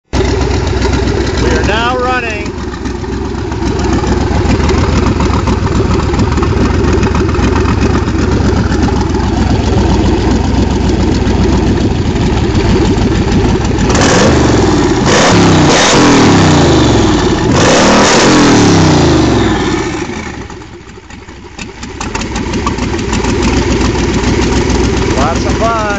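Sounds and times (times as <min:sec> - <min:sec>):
hot rod engine revving: 0:00.1 - 0:25.9.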